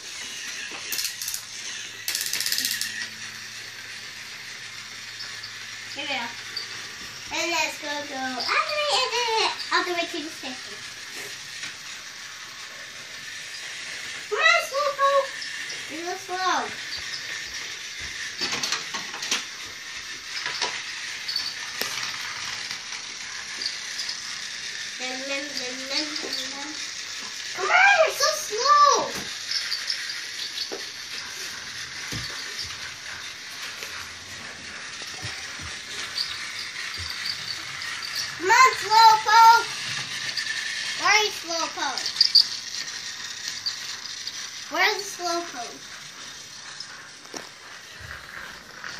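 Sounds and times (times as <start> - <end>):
toy train whirring and ticking: 0.0 - 48.9.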